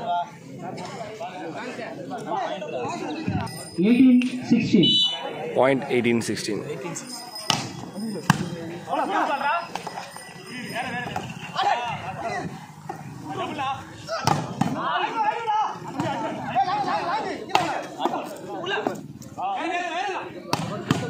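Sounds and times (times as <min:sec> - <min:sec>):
players and spectators shouting: 0:00.0 - 0:21.0
volleyball being struck by hand: 0:07.5 - 0:08.5, 0:20.5 - 0:21.0.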